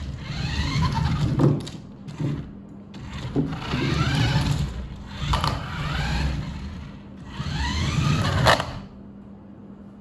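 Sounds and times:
toy motor whining: 0:00.0 - 0:01.6, 0:03.0 - 0:08.9.

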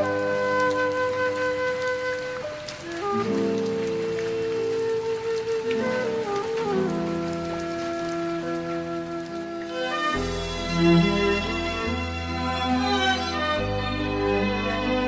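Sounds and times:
bamboo flute melody: 0:00.0 - 0:15.0.

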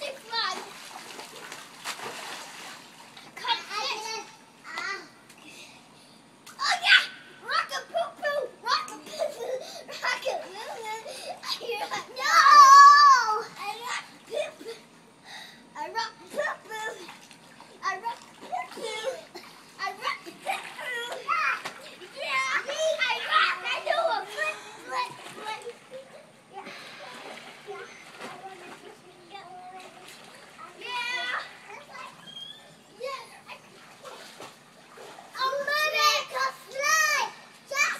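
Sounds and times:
water splashing: 0:00.0 - 0:03.2, 0:26.7 - 0:32.3, 0:33.5 - 0:35.7
children shouting and chattering: 0:18.6 - 0:33.6
child's high-pitched shriek: 0:32.2 - 0:32.8.

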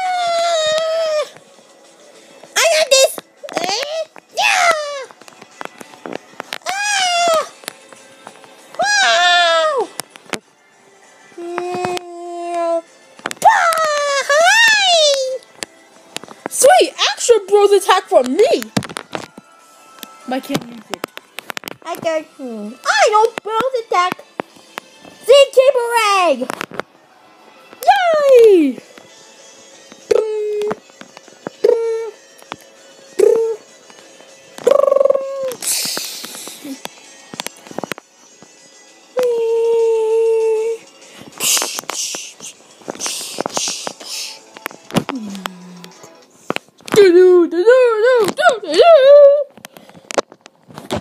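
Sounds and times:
child's wordless cries and squeals: 0:00.0 - 0:01.4, 0:02.6 - 0:05.2, 0:06.6 - 0:07.6, 0:08.8 - 0:10.0, 0:11.4 - 0:15.4, 0:30.1 - 0:30.8, 0:31.6 - 0:32.2, 0:33.2 - 0:33.6, 0:34.6 - 0:35.6, 0:47.0 - 0:49.5.

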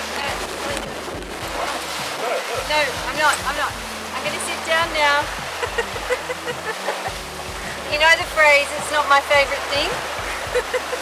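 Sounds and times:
engine droning: 0:00.0 - 0:11.0
water rushing: 0:00.0 - 0:11.0
wind: 0:00.0 - 0:11.0.

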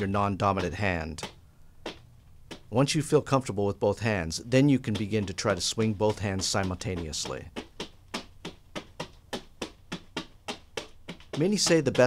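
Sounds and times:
leather floggers smacking mannequin: 0:04.8 - 0:12.0.

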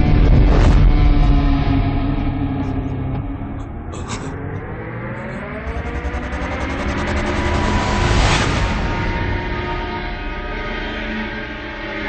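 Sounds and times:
dramatic film score drone: 0:00.0 - 0:12.0.

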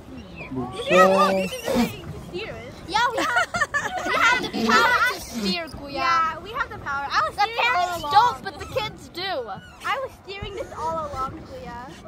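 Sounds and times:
people talking and calling out: 0:00.0 - 0:12.0
people laughing: 0:03.0 - 0:05.1.

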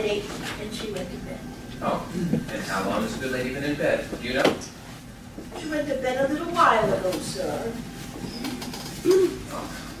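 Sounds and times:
person humming: 0:09.0 - 0:09.8.

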